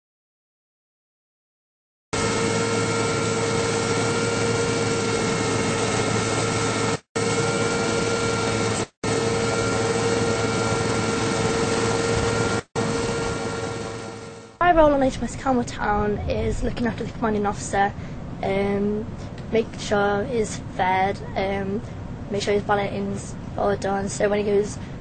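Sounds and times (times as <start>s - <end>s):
machinery drone with hum: 2.2s - 25.0s.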